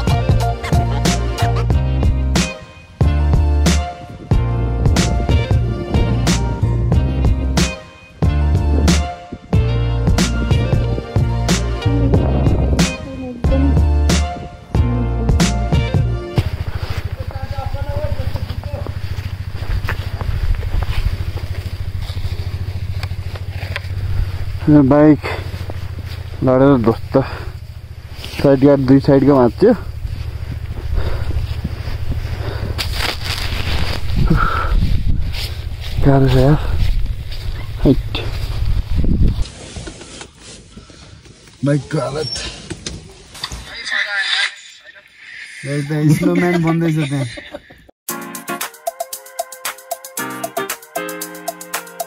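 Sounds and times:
motorcycle engine idling: 10.6s - 14.0s, 16.0s - 39.4s
person's high-pitched wavering cry: 11.8s - 14.0s.

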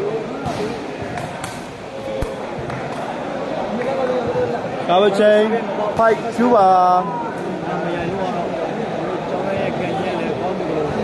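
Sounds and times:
crowd voices in a hall: 0.0s - 11.0s.

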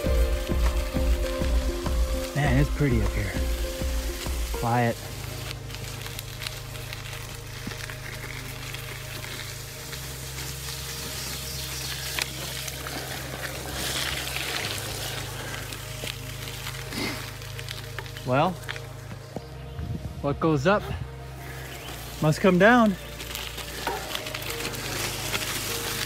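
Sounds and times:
background music with low notes: 0.0s - 26.0s
bicycle tyres rolling on wet dirt: 0.0s - 26.0s.

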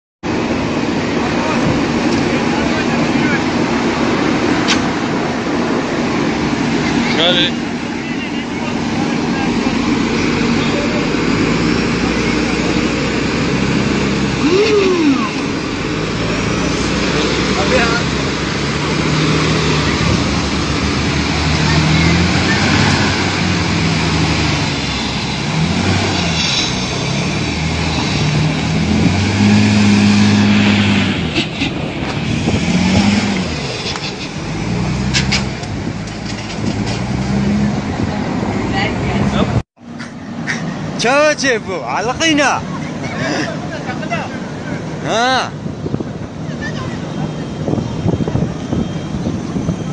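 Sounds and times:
heavy vehicle engine revving: 0.3s - 49.9s
men's voices: 14.4s - 15.5s, 16.1s - 18.3s, 40.4s - 45.7s.

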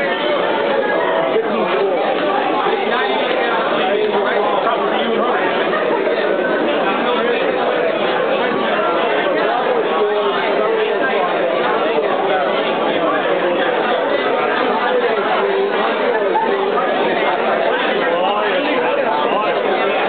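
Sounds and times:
crowd chatter in a hall: 0.0s - 20.0s.

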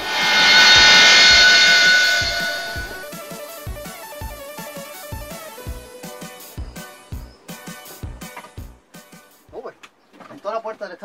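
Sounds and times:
guitar music with steady beat: 3.0s - 9.6s.

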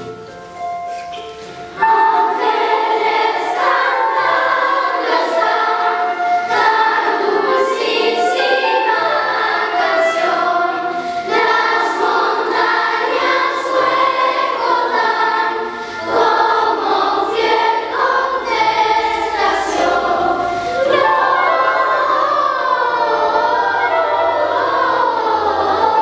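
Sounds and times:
children's choir singing a carol: 0.0s - 26.0s
choir breaths: 0.9s - 26.0s.

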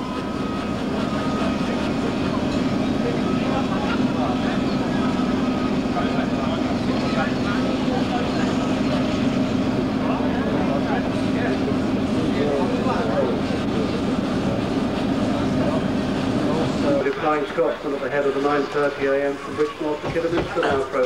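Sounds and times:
steam locomotive exhaust rush: 0.0s - 21.0s.

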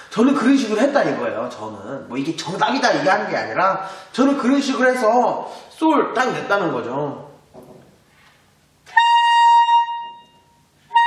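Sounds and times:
alto saxophone high note: 8.8s - 11.0s.

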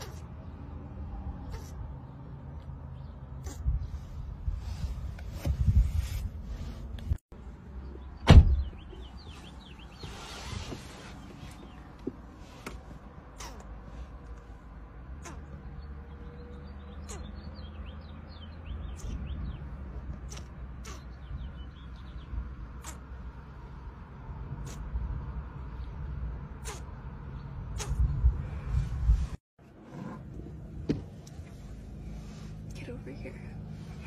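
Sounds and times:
lip smacks kissing: 13.4s - 13.8s, 22.8s - 23.1s, 26.6s - 26.9s.

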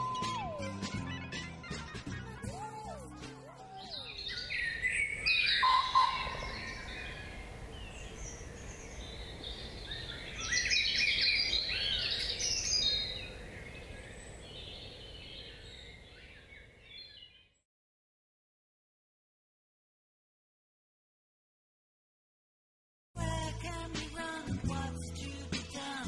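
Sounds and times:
birds chirping and twittering: 0.0s - 17.6s
outdoor background hiss: 4.1s - 17.3s.

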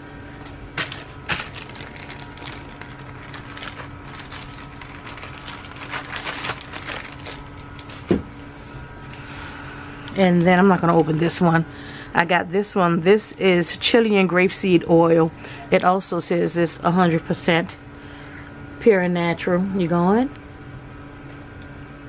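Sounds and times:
electrical hum: 0.0s - 22.0s
bottles and packaging handled: 0.8s - 8.2s.

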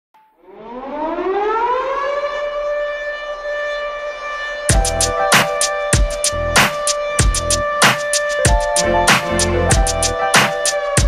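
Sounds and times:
siren wailing: 0.2s - 11.0s.

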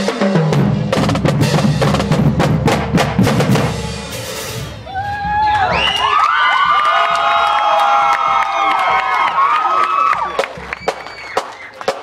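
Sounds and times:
marching drumline playing: 0.0s - 12.0s.

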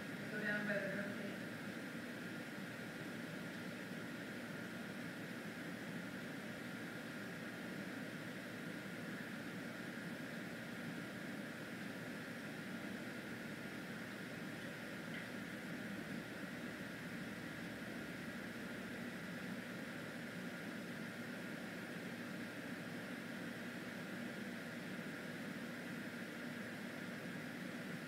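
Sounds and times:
fan humming: 0.0s - 28.0s.

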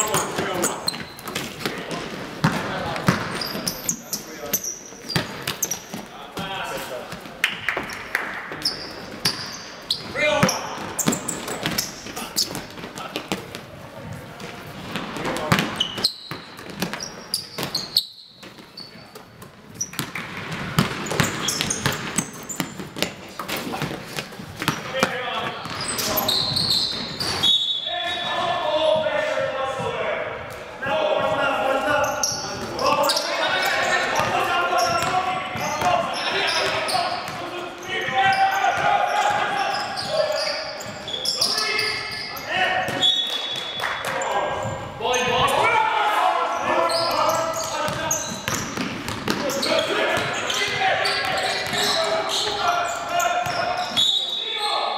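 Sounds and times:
voices calling out: 49.4s - 54.9s.

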